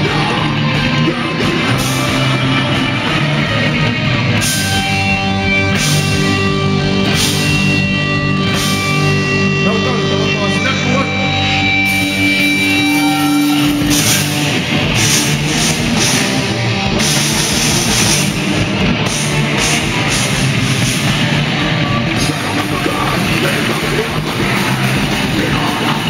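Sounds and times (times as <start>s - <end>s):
bass guitar: 0.0s - 26.0s
distorted electric guitars: 0.0s - 26.0s
drums with cymbal crashes: 11.9s - 21.7s.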